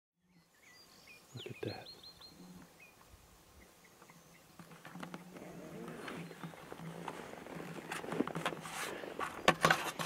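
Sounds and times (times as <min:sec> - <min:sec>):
small bird chirping: 0:00.2 - 0:04.7, 0:05.5 - 0:07.0.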